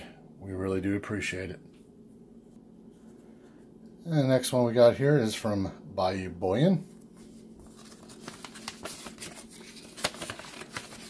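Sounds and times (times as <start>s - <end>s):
paper envelope crinkling and rustling: 6.8s - 11.0s.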